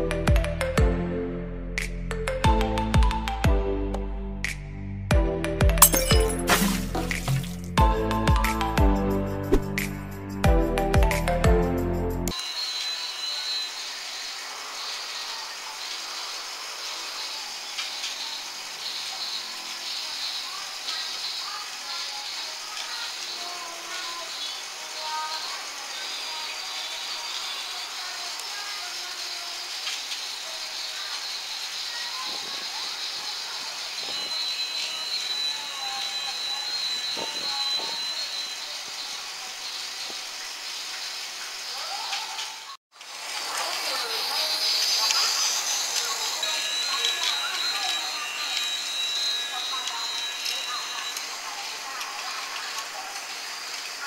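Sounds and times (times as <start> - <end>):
toy train whirring and rattling: 12.3 - 54.0.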